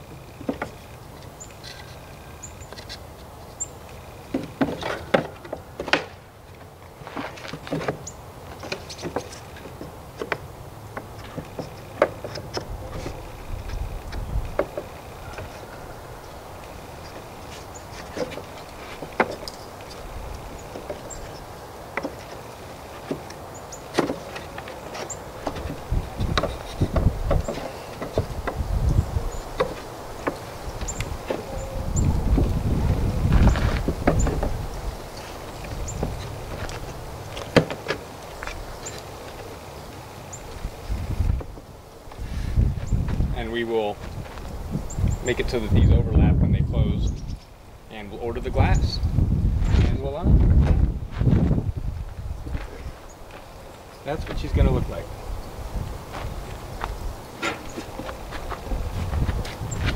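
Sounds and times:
wooden parts being handled: 0.1s - 3.4s, 4.3s - 15.9s, 16.6s - 43.2s, 56.0s - 59.9s
wooden knocks and clicks: 0.4s - 0.8s, 7.1s - 13.2s, 14.1s - 15.6s, 21.9s - 22.4s, 23.0s - 28.6s, 29.5s - 31.5s, 33.4s - 34.6s
wind rumble on microphone: 12.5s - 21.6s, 25.3s - 37.5s, 40.4s - 59.9s.

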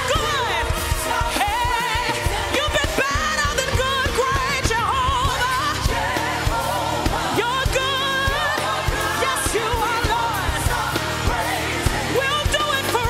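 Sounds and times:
backing vocalists singing: 0.0s - 13.0s
band playing steady beat: 0.0s - 13.0s
lead singer with vibrato: 0.0s - 13.0s.

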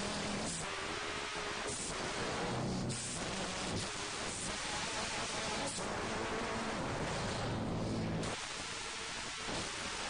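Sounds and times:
loud hiss-like noise: 0.0s - 10.0s.

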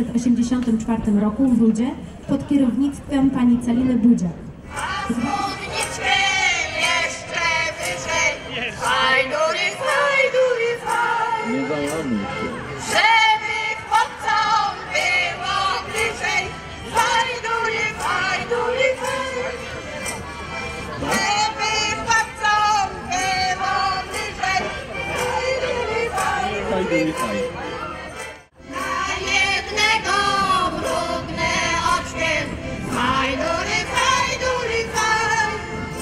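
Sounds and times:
choir singing: 4.7s - 11.6s, 12.8s - 19.7s, 21.0s - 27.5s, 28.6s - 35.8s.

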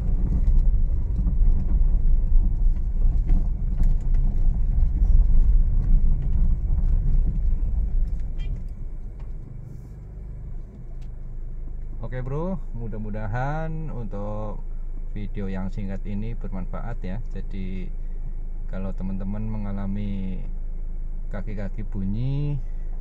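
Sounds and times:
car road rumble on rough road: 0.0s - 23.0s.

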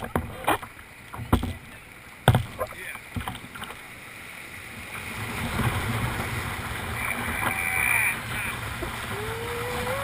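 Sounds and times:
paddle splashing and knocking: 0.0s - 3.9s, 4.8s - 10.0s
water rushing over weir: 0.0s - 10.0s.

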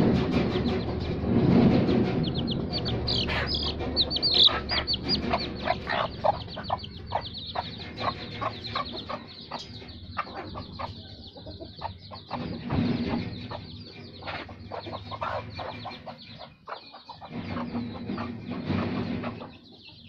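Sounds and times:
chicks peeping: 0.0s - 20.0s.

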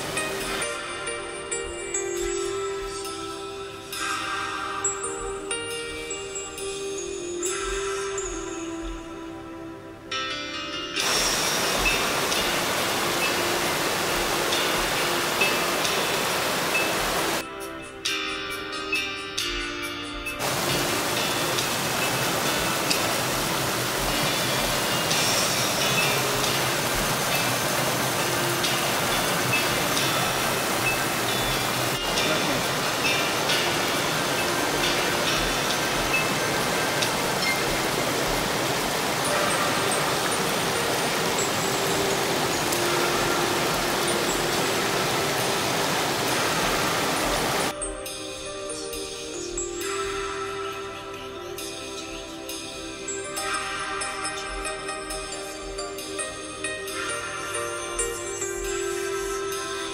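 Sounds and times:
music with chime-like notes: 0.0s - 59.9s.

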